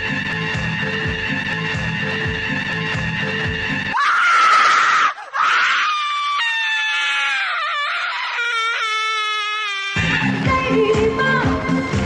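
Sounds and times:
woman screaming: 0:03.9 - 0:10.3
disco music with steady beat: 0:10.1 - 0:12.0.

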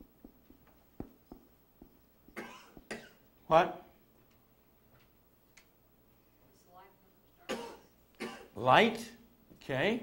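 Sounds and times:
marker pen writing on whiteboard: 0:00.0 - 0:03.0
person coughing: 0:02.4 - 0:03.2, 0:07.5 - 0:08.6.

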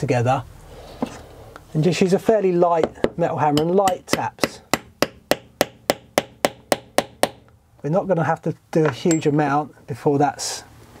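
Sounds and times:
hammer tapping metal tool: 0:02.8 - 0:07.5, 0:08.8 - 0:09.4.

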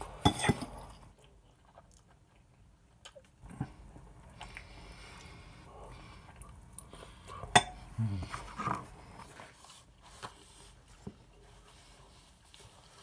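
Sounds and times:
chewing: 0:00.9 - 0:07.5.

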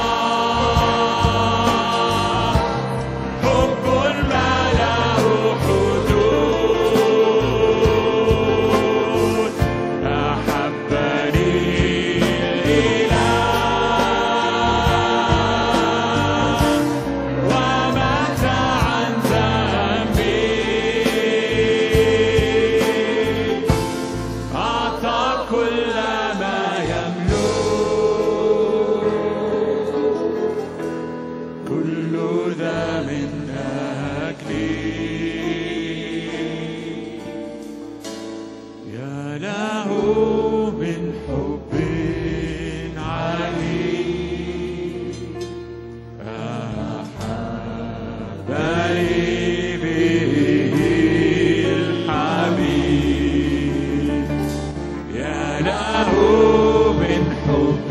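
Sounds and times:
man singing hymn: 0:00.0 - 0:16.8, 0:38.9 - 0:45.0
group singing a hymn: 0:00.0 - 0:38.2, 0:38.8 - 0:57.9
sustained instrumental accompaniment: 0:00.0 - 0:57.9.

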